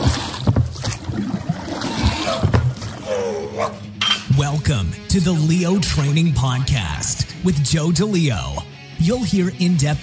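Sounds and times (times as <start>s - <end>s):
water sloshing around boat: 0.0s - 4.0s.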